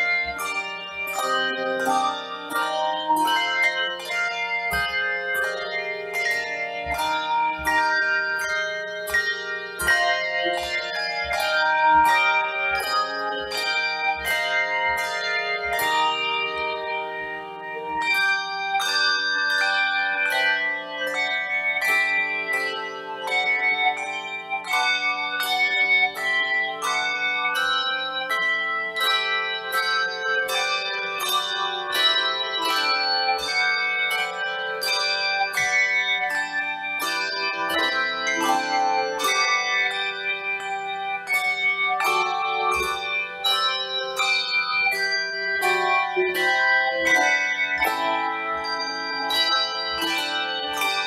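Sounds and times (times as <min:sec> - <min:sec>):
handbell choir ringing chords: 0:00.0 - 0:51.0.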